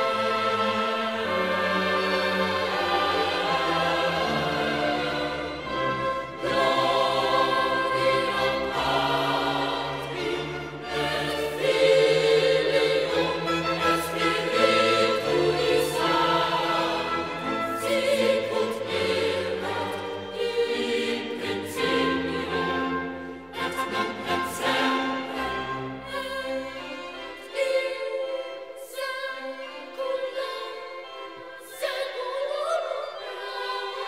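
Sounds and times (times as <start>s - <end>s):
boys' choir singing: 0.0s - 34.0s
small orchestra playing: 0.0s - 34.0s.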